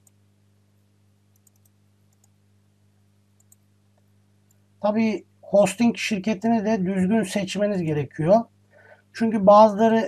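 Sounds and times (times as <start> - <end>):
low electrical hum: 0.0 - 10.0
computer mouse clicks: 1.3 - 2.4, 3.4 - 4.6.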